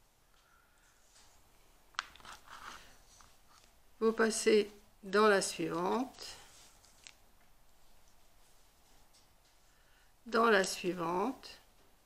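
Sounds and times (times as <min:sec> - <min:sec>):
soft rustling: 0:00.2 - 0:03.9, 0:05.6 - 0:09.8.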